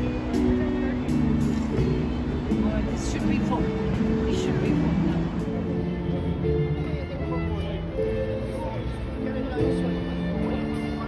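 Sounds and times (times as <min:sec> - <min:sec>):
people talking: 0:00.0 - 0:05.2
orchestral music: 0:00.0 - 0:11.0.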